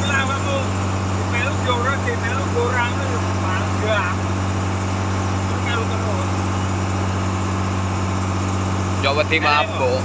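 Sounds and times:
boat engine humming: 0:00.0 - 0:10.0
water rushing along hull: 0:00.0 - 0:10.0.

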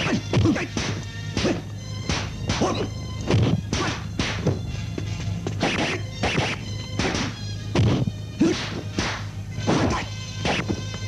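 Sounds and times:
punch and kick swishes: 0:00.0 - 0:04.6, 0:05.6 - 0:10.8.

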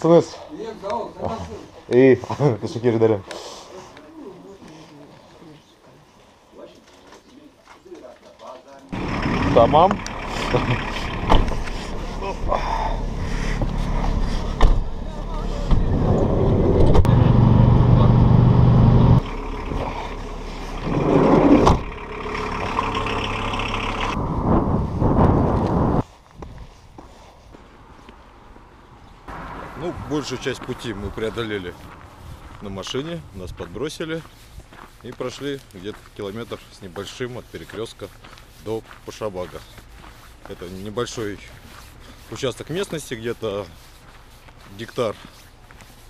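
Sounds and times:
engine and road noise in cabin: 0:09.0 - 0:26.0.

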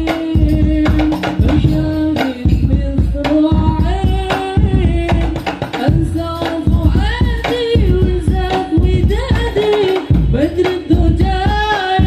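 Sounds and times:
frame drums beating: 0:00.0 - 0:12.0
man singing into a microphone: 0:00.0 - 0:12.0.

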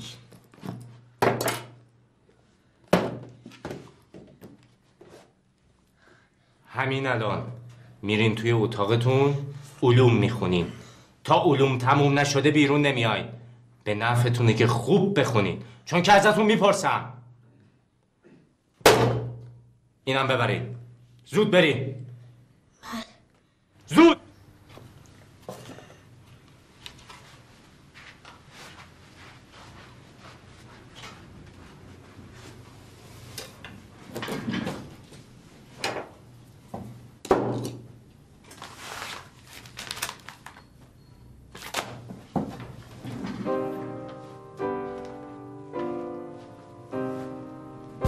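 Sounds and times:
knocks and clunks on wooden desk: 0:02.9 - 0:04.6.

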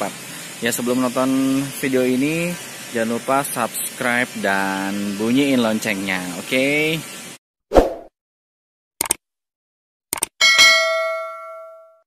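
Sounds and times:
notification bell ding: 0:10.4 - 0:12.0.

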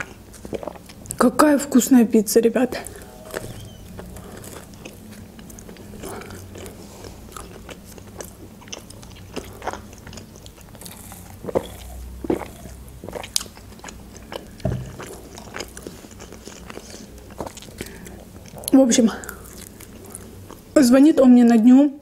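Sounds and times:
chewing pizza: 0:00.0 - 0:01.3, 0:02.7 - 0:20.8.

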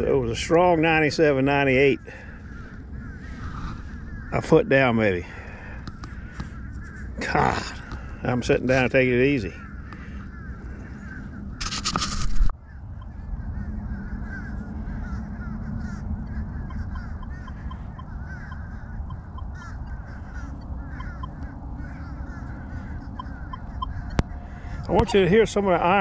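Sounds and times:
low rumble: 0:00.0 - 0:08.8, 0:09.6 - 0:26.0
geese honking: 0:00.0 - 0:26.0.

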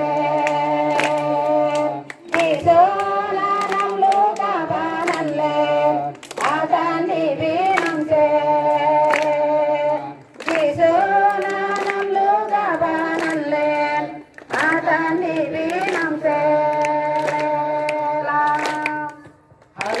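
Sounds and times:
hand claps: 0:00.0 - 0:20.0
women and children singing hymn: 0:00.0 - 0:20.0.

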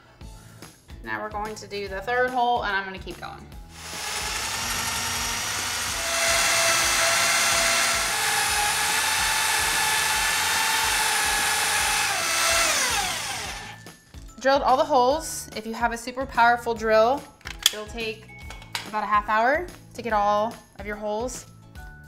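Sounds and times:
electric drill boring into wood: 0:03.7 - 0:13.8.

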